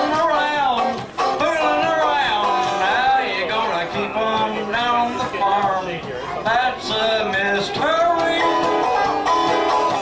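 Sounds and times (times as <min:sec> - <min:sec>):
man singing: 0:00.0 - 0:09.1
banjo picking: 0:00.0 - 0:10.0.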